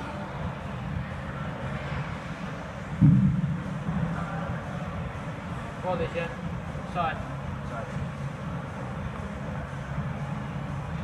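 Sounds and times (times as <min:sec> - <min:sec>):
low gym rumble: 0:00.0 - 0:11.0
dull low thump on turf: 0:03.0 - 0:03.6.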